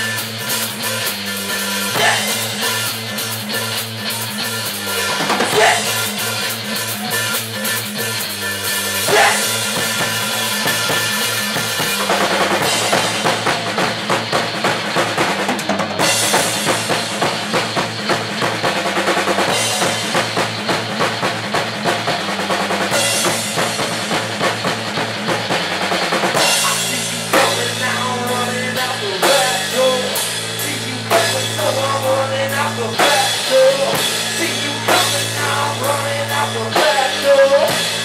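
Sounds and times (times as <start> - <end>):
drum kit: 0.0 - 38.0
rock band playing: 0.0 - 38.0.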